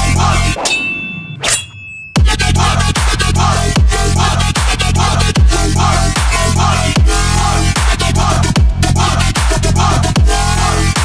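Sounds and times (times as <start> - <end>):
metallic clang ringing: 0.6 - 2.2
dubstep bass and beat: 2.2 - 11.0.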